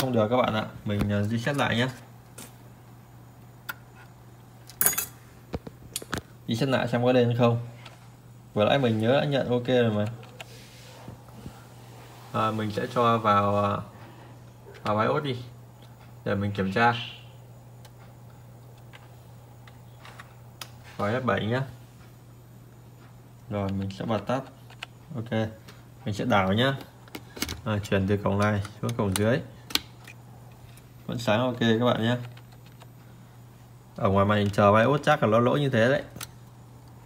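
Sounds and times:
low steady hum: 0.0s - 37.0s.

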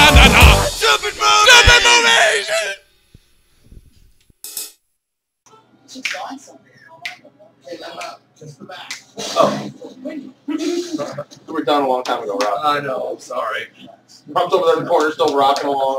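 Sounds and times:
men talking and laughing: 0.0s - 2.7s
song with singing voices: 0.0s - 2.7s.

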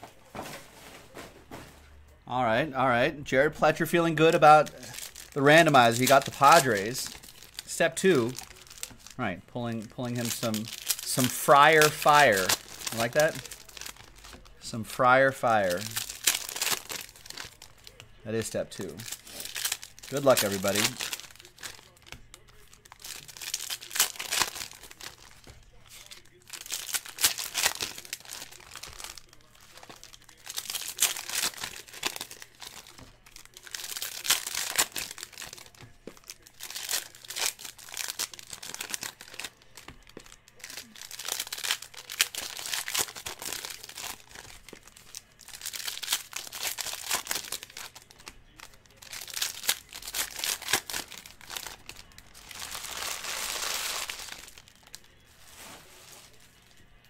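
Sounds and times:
foil wrappers tearing and crinkling: 3.7s - 9.2s, 9.8s - 56.8s.

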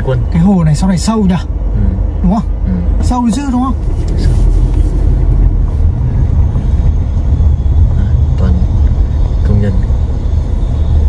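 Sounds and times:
car interior driving rumble: 0.0s - 11.0s.

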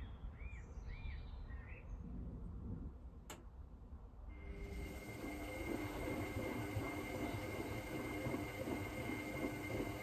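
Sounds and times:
washing machine hum: 4.3s - 10.0s.

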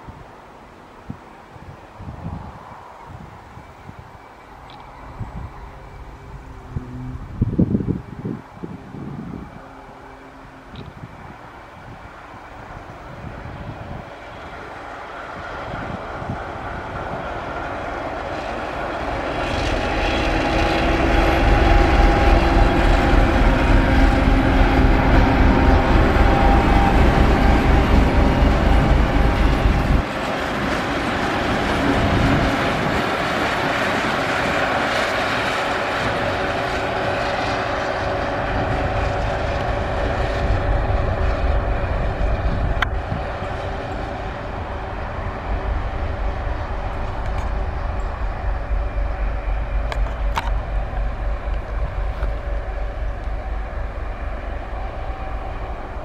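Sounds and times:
wheel noise on rails: 0.0s - 56.0s
locomotive diesel engine rumbling: 4.2s - 56.0s.

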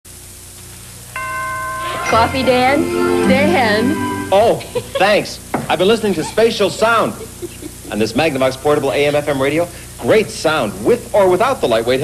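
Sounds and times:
low hum and hiss: 0.1s - 12.0s
bell-like chime ringing: 1.2s - 4.8s.

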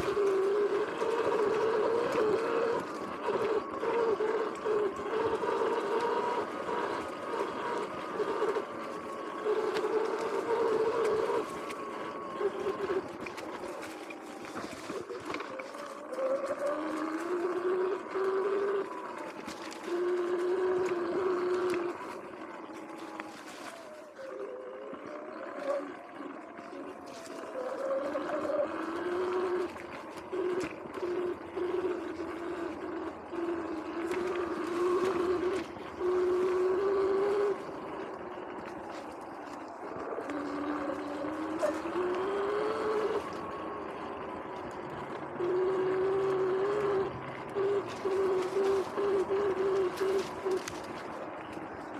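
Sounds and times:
electric dirt bike motor whining: 0.0s - 51.9s.

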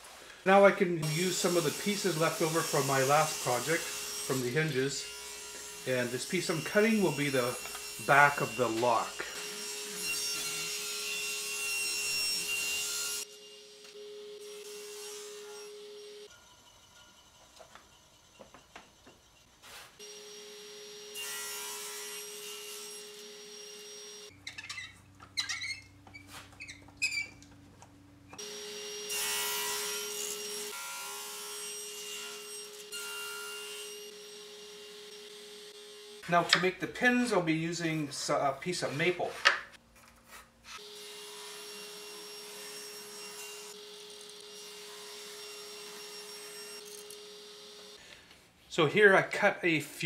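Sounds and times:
table saw cutting wood: 1.0s - 24.9s, 28.4s - 48.0s.

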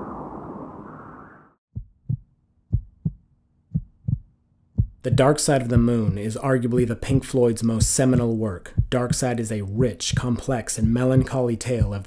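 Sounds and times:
heartbeat double thumps: 1.7s - 12.0s.

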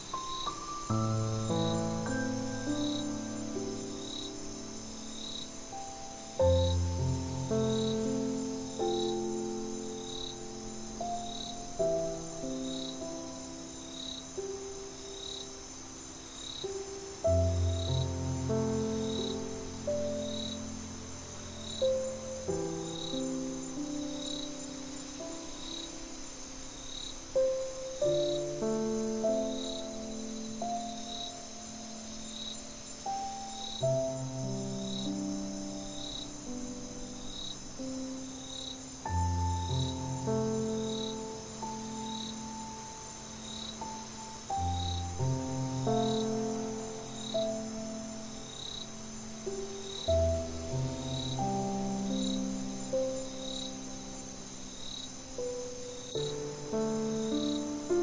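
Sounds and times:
crickets chirping: 0.0s - 58.0s
soft solo piano: 0.0s - 58.0s.

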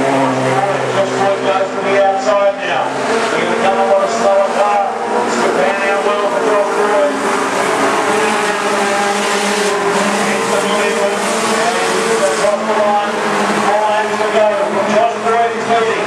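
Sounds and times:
race car engines revving: 0.0s - 16.0s.

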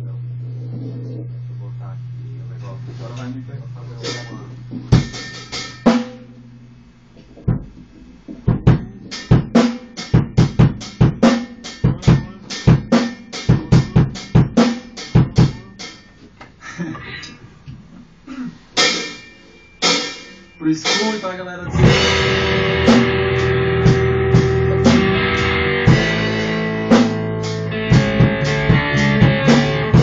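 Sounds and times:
low hum: 0.0s - 9.6s, 21.4s - 30.0s
drum kit played by hand: 4.0s - 6.4s, 7.2s - 16.3s, 18.7s - 30.0s.

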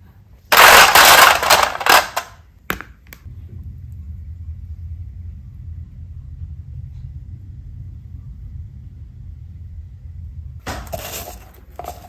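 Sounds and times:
low steady rumble: 0.0s - 12.0s
plastic containers clattering: 0.5s - 2.9s, 10.8s - 12.0s.

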